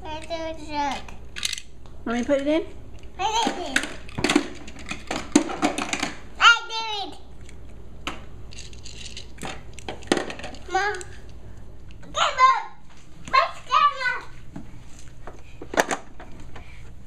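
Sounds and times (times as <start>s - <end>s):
plastic toy truck clicks and knocks: 3.4s - 6.2s.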